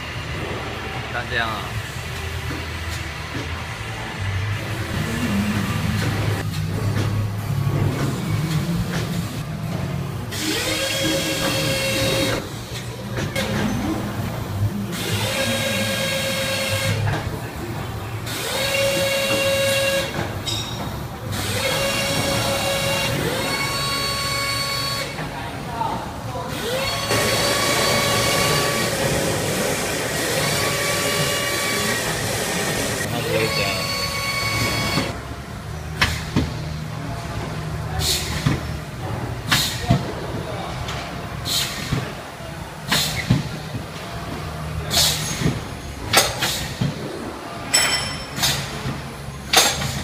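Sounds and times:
air hissing from cylinders: 26.5 - 35.2, 37.9 - 38.8, 39.4 - 40.2, 40.9 - 43.8, 44.4 - 47.6, 48.3 - 50.0.

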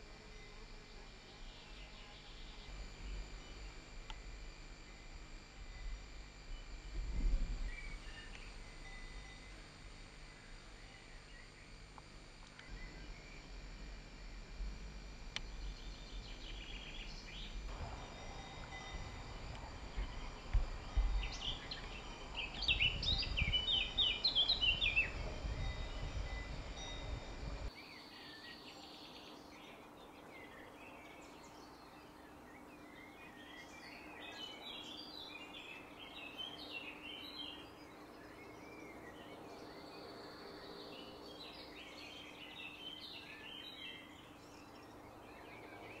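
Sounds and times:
small birds chirping: 0.0 - 14.6, 15.3 - 46.0
low rumble: 11.6 - 27.7.

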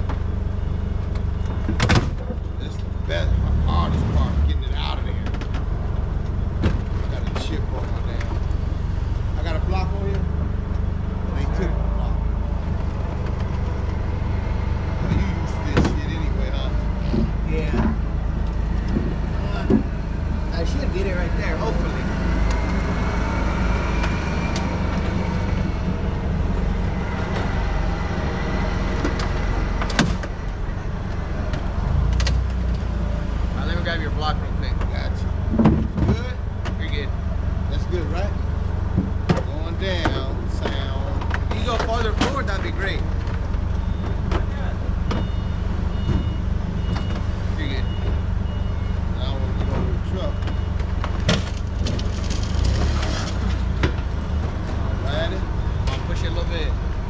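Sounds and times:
vehicle engine idling: 0.0 - 57.0
background voices: 2.2 - 32.0.

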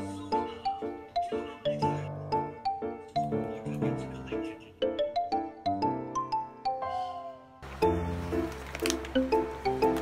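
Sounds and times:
light instrumental music: 0.0 - 10.0.

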